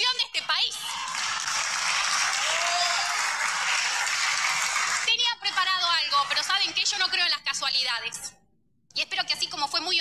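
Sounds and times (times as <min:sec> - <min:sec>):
crowd applauding: 0:00.9 - 0:07.1.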